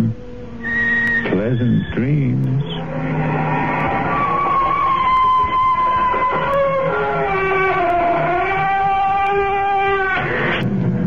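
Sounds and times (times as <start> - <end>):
door hinge creaking: 3.8 - 10.6.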